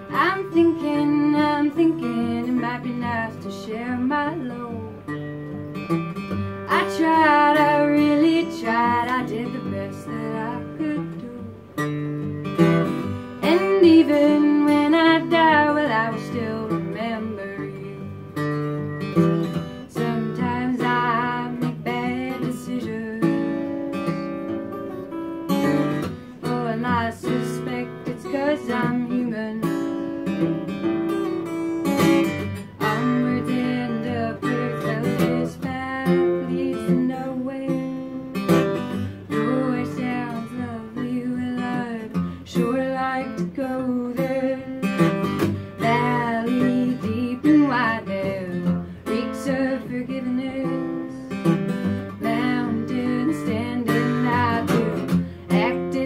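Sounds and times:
acoustic guitar blues: 0.0 - 56.0
woman singing: 0.0 - 56.0.

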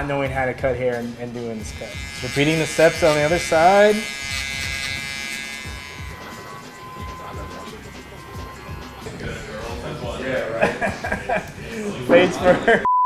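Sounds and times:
electric hair clippers buzzing: 1.6 - 10.2.

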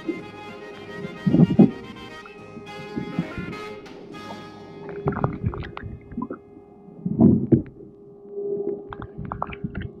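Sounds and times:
underwater low hum: 2.6 - 10.0
underwater pops and blips: 4.9 - 6.4, 8.7 - 10.0.

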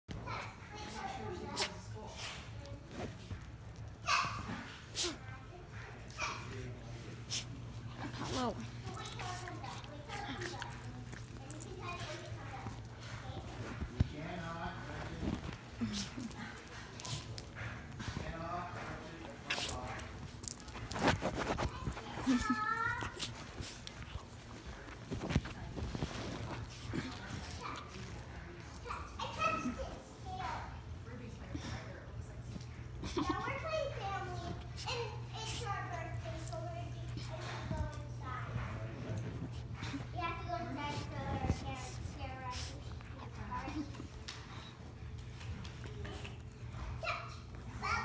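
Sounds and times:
dog scuffling on fabric couch: 0.8 - 3.8, 4.4 - 29.6, 34.2 - 44.5.

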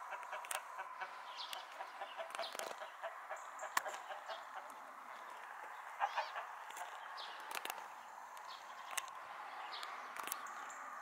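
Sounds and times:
chicken clucks: 0.0 - 4.8, 5.6 - 7.0.

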